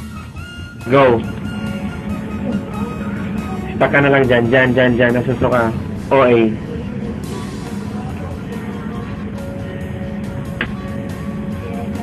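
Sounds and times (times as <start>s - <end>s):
background music with held tones: 0.0s - 12.0s
loud wavering voice: 0.8s - 10.6s.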